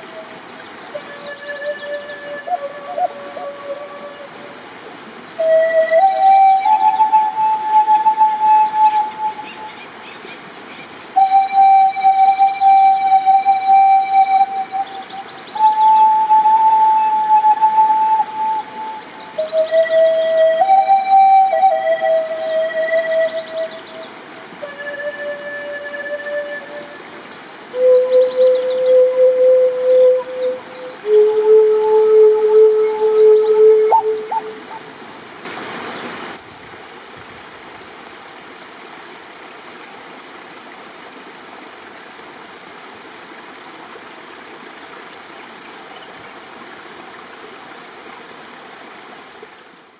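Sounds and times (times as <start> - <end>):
wooden flute melody: 0.0 - 9.9, 11.0 - 34.9
creek water running: 0.0 - 49.9.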